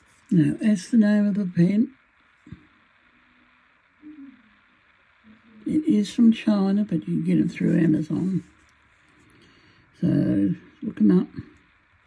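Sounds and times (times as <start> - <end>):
faint falling hum: 0.0 - 12.0
faint hiss: 0.0 - 12.0.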